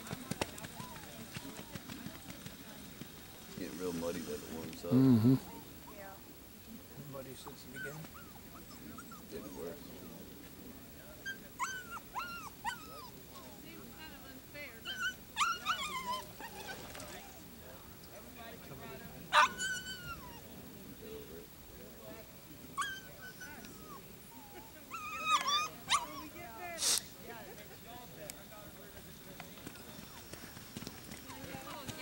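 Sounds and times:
dog whining and yipping: 7.8 - 9.4, 11.2 - 13.1, 14.8 - 16.7, 19.4 - 20.4, 22.8 - 26.3.

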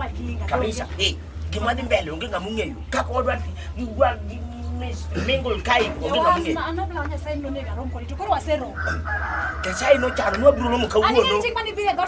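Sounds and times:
people talking: 0.0 - 12.0
rooster crowing: 8.7 - 11.4.

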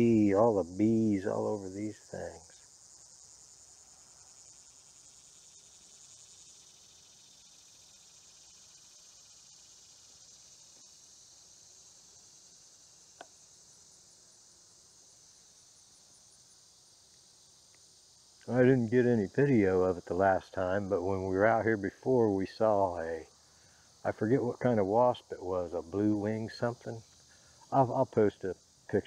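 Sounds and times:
insects singing: 0.0 - 29.0.

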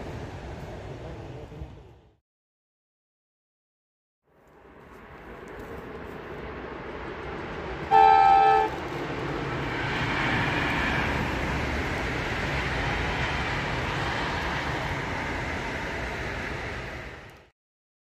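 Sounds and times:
passenger train passing: 0.0 - 2.2, 4.4 - 17.5
train horn blast: 7.9 - 8.8.

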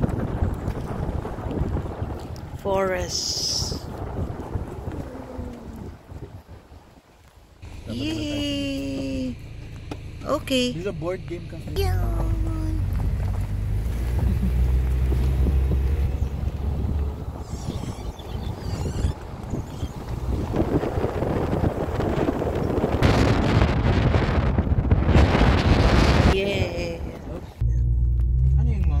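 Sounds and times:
wind buffeting microphone: 0.0 - 7.7, 11.8 - 27.8
low road rumble: 0.0 - 29.0.

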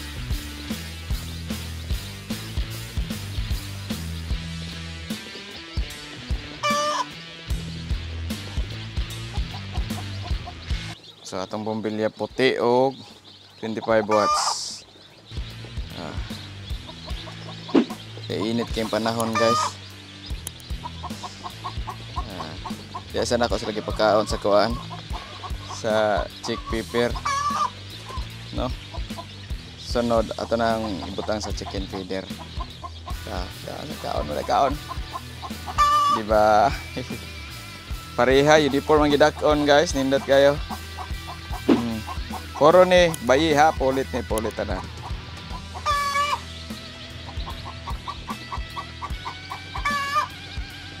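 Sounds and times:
background music: 0.0 - 51.0
chicks peeping: 0.0 - 51.0.

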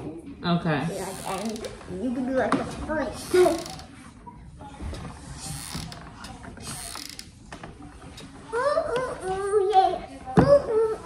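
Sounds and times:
glue gun creaking and clicking: 1.0 - 1.8, 3.2 - 3.9, 5.5 - 7.4.

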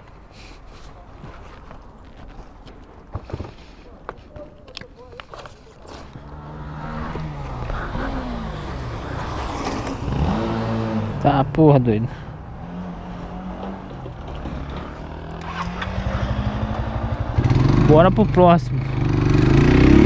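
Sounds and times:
motorcycle passing by: 6.2 - 20.0.

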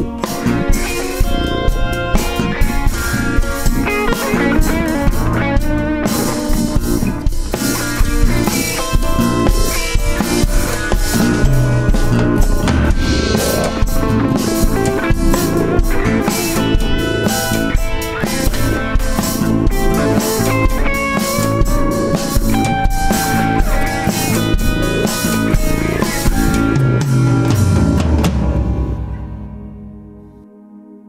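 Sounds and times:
drum kit: 0.0 - 30.2
instrumental jazz: 0.0 - 30.4
guitar playing: 0.0 - 31.0.

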